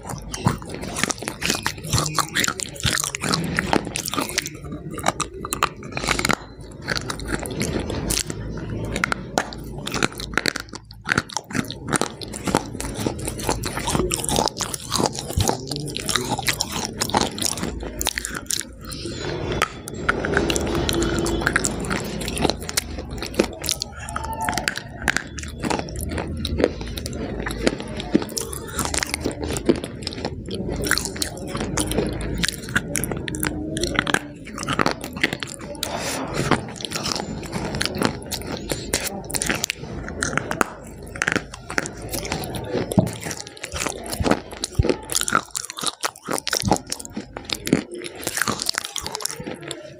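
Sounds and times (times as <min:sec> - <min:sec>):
chewing mouth sounds: 0:00.0 - 0:49.9
crunching food: 0:00.0 - 0:49.9.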